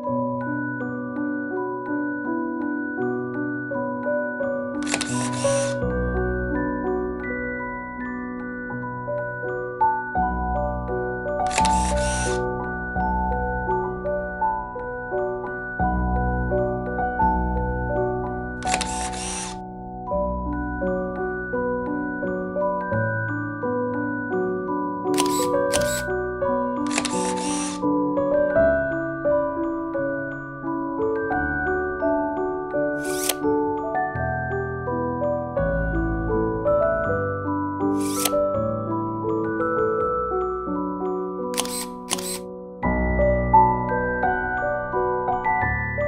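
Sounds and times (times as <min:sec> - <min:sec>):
background music: 0:00.0 - 0:46.0
camera shutter click and whir: 0:04.8 - 0:05.9, 0:11.4 - 0:12.5, 0:18.6 - 0:19.6, 0:25.1 - 0:26.1, 0:26.8 - 0:27.8, 0:33.0 - 0:33.5, 0:37.9 - 0:38.5, 0:41.5 - 0:42.5.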